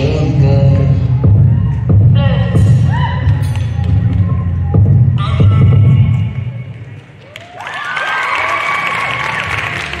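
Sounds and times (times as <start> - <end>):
bass-heavy music: 0.0 - 7.0
applause: 6.7 - 10.0
audience cheering and whooping: 7.2 - 10.0.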